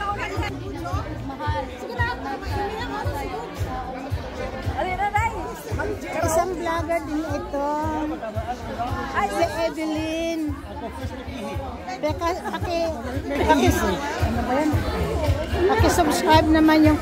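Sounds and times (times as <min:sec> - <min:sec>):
women talking: 0:00.0 - 0:04.0, 0:04.6 - 0:08.1, 0:09.1 - 0:10.6, 0:11.5 - 0:17.0
background music with low beat: 0:00.0 - 0:17.0.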